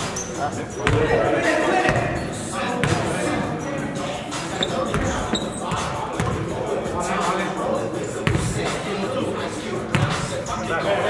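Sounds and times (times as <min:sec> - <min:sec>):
echoing players' voices: 0:00.0 - 0:11.0
basketball bouncing on wooden floor: 0:04.8 - 0:06.4, 0:08.2 - 0:08.6.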